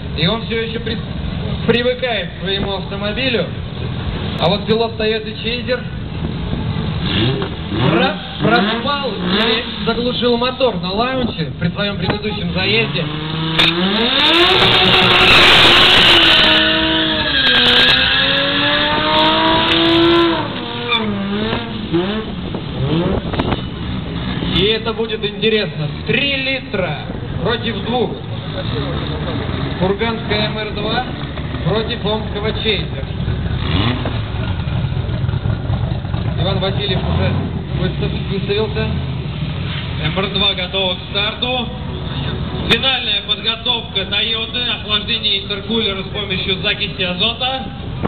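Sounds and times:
drag race car engines: 0.0s - 48.0s
engine revving high: 6.9s - 10.0s, 12.5s - 24.9s, 33.5s - 34.8s.

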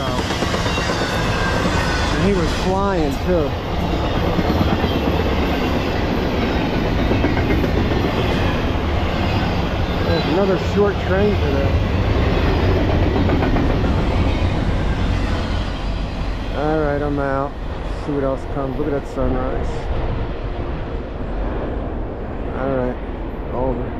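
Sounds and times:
freight train passing: 0.0s - 23.9s.

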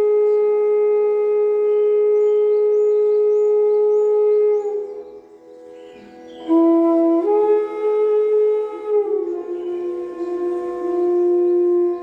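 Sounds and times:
bamboo flute long note: 0.0s - 12.0s.

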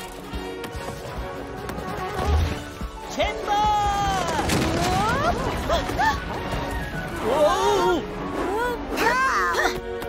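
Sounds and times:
background music: 0.0s - 10.0s
crash: 4.0s - 7.4s.

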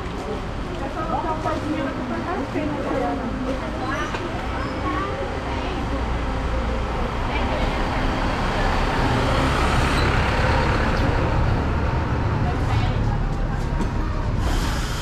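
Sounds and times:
minibus driving past: 0.0s - 15.0s
street traffic: 0.0s - 15.0s.

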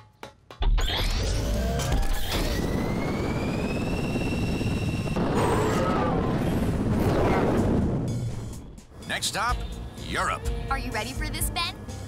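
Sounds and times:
high engine whine: 0.8s - 9.0s
low rotor rumble: 0.8s - 9.2s.

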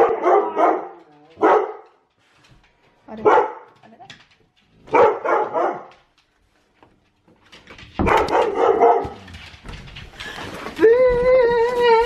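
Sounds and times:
dogs barking excitedly: 0.0s - 2.1s, 3.2s - 3.8s, 4.8s - 6.1s, 7.6s - 9.6s.

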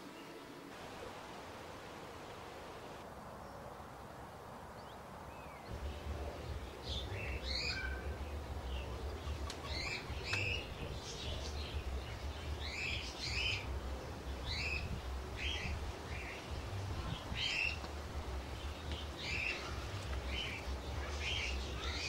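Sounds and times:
low steady rumble: 5.7s - 22.0s.

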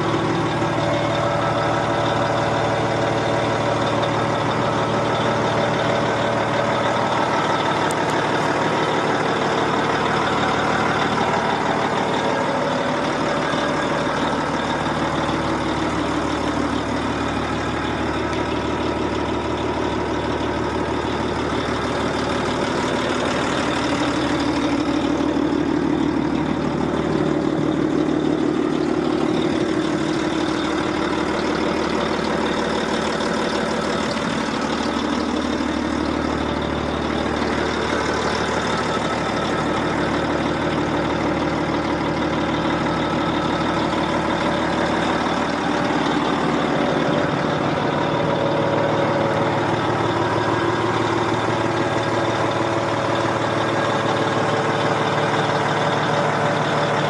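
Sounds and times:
diesel engine idling: 0.0s - 57.0s.

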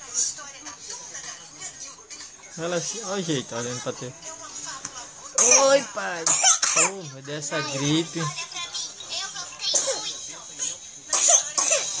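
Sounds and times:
person coughing: 11.2s - 12.0s.

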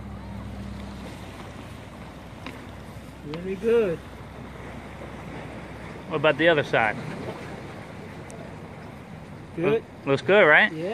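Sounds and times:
water at the shore: 0.0s - 10.9s
wind: 0.0s - 10.9s.

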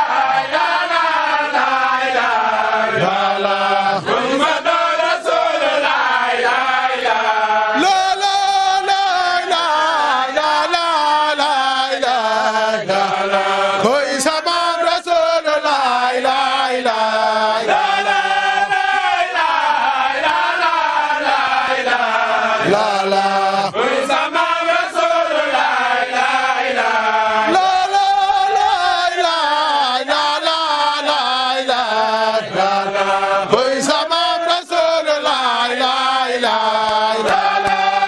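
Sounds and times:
men chanting in unison: 0.0s - 38.0s.

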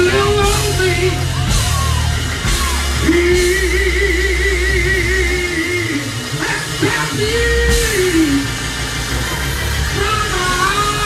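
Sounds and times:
band playing with heavy bass: 0.0s - 11.0s
person singing gospel: 0.0s - 11.0s.

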